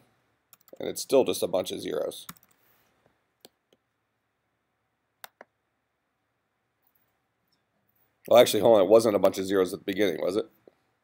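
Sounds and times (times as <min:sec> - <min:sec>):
faint computer keystrokes: 0:02.2 - 0:02.6.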